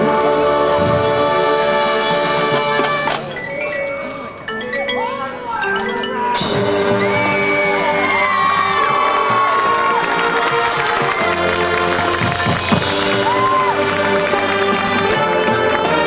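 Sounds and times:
marching band playing chords: 0.0s - 16.0s
audience cheering and whooping: 6.0s - 16.0s.

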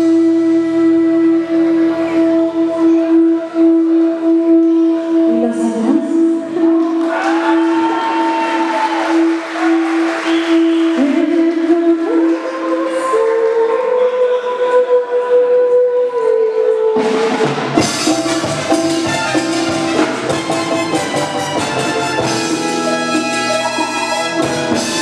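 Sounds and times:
bass: 0.0s - 13.7s, 17.0s - 25.0s
percussion: 6.6s - 25.0s
drums: 17.0s - 25.0s.

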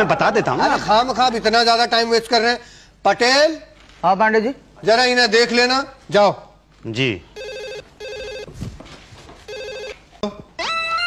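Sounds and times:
telephone ringing: 7.4s - 8.6s, 9.4s - 10.1s.

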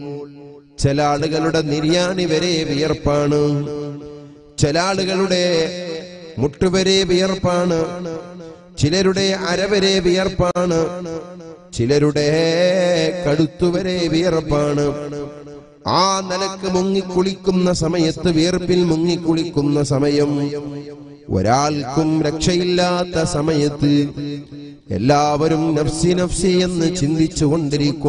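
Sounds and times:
man chanting melodically: 0.0s - 28.0s.

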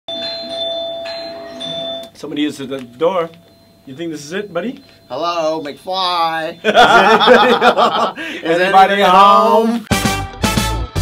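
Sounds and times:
doorbell chime tune: 0.1s - 8.0s
held ringing tone: 0.1s - 9.5s.

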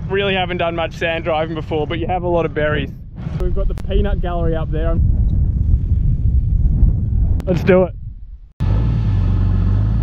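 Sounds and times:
wind buffeting microphone: 0.0s - 8.6s.

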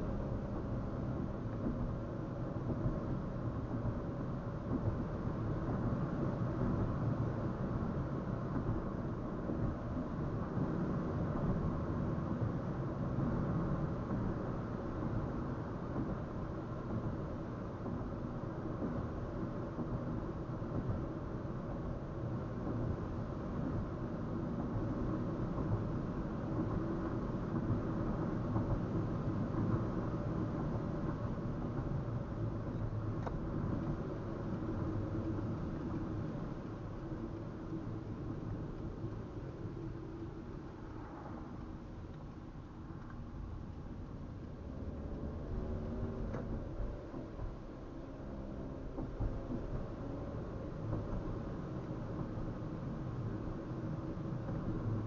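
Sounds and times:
car tyre and engine rumble: 0.0s - 55.0s.

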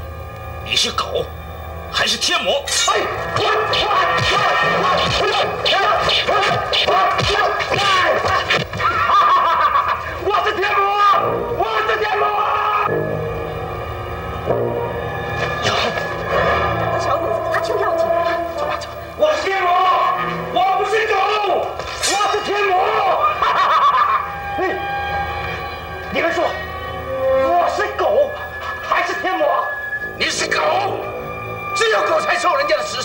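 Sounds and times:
man yelling: 2.8s - 8.6s, 10.2s - 12.9s, 17.2s - 23.4s.

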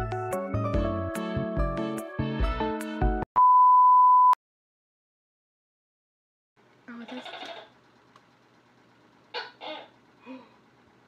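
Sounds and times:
music: 0.0s - 3.3s.

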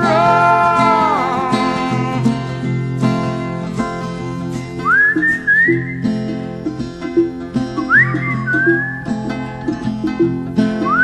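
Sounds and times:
plucked acoustic guitar: 0.0s - 11.0s
whistled melody: 4.8s - 6.2s, 7.1s - 11.0s.

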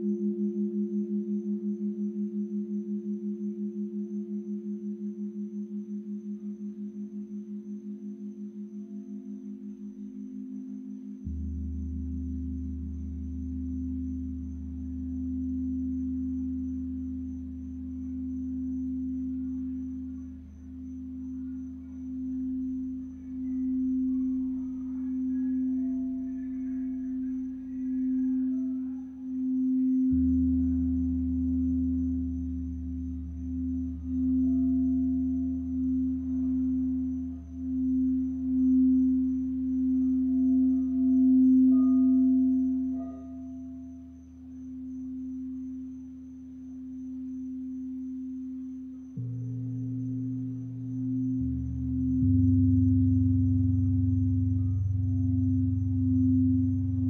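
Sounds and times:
deep hum: 0.0s - 57.0s
singing bowl tone: 0.0s - 57.0s.

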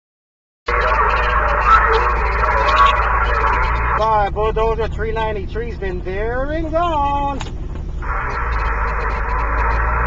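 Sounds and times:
faint wavering signal tones: 0.7s - 4.0s, 8.0s - 10.0s
low hum: 0.7s - 10.0s
radio static: 0.7s - 10.0s.

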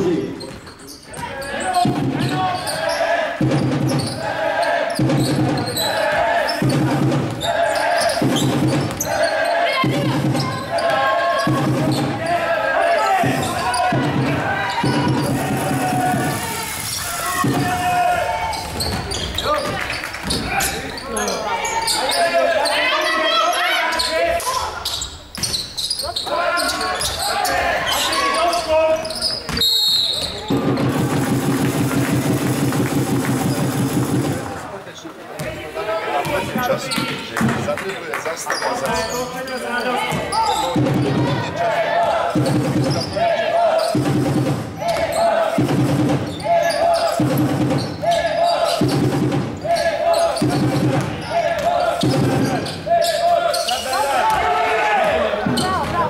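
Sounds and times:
people shouting: 4.2s - 19.6s, 26.0s - 29.0s, 46.3s - 47.4s, 48.0s - 56.0s
short high whistle: 29.6s - 30.3s.

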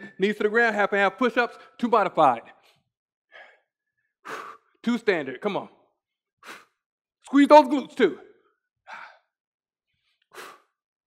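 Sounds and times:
man speaking: 0.0s - 2.5s, 4.8s - 5.7s, 7.3s - 8.2s
man breathing hard: 2.6s - 4.8s, 6.4s - 6.8s, 8.9s - 9.4s, 10.0s - 10.8s.

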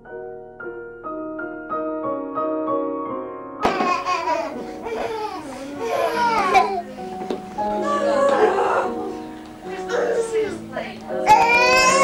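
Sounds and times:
background music: 0.0s - 12.0s
child crying: 3.9s - 7.0s, 7.8s - 9.1s, 9.8s - 10.5s, 11.1s - 12.0s
child vocal sounds: 4.8s - 7.1s, 11.2s - 12.0s.

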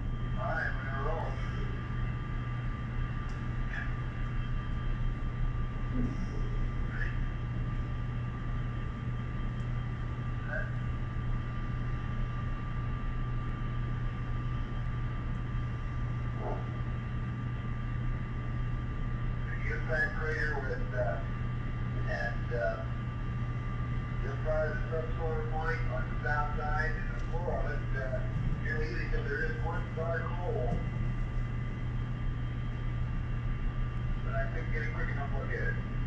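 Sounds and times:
steady hum and hiss: 0.0s - 36.0s.

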